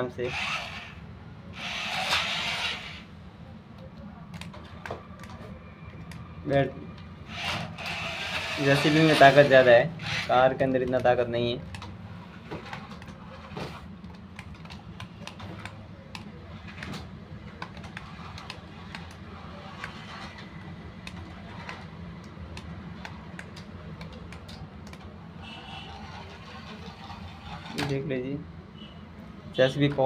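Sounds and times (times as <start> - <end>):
small motors humming: 0.3 - 3.1, 7.3 - 10.3.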